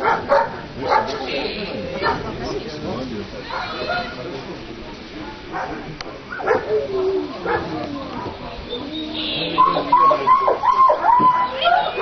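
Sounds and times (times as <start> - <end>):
dog barking: 0.0 - 1.2, 3.5 - 4.0, 5.5 - 8.4
voices: 0.0 - 12.0.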